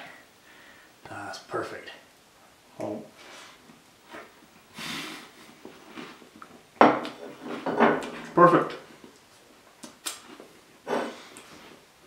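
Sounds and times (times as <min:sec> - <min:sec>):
man eating: 0:09.2 - 0:11.8.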